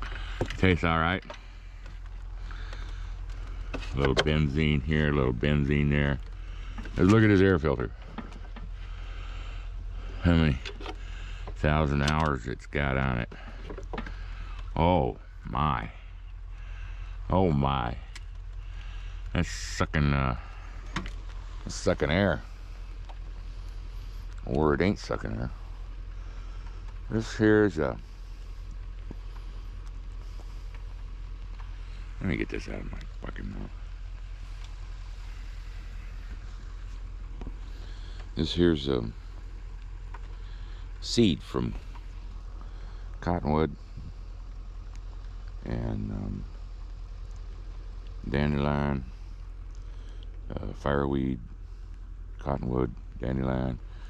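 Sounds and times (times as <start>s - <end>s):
snowblower engine running: 0.0s - 54.0s
faint clicks: 44.3s - 45.6s.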